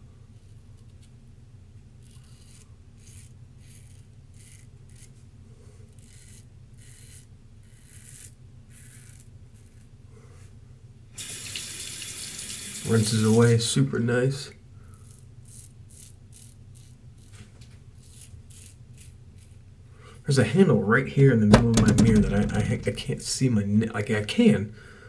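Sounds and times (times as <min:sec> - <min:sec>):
razor scraping stubble: 0:02.0 - 0:05.2, 0:05.9 - 0:09.9, 0:14.9 - 0:19.6
tap running into sink: 0:21.5 - 0:22.9.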